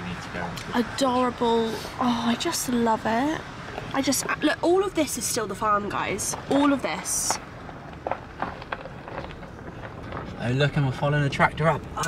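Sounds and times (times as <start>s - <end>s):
car driving rumble from inside: 0.0s - 12.0s.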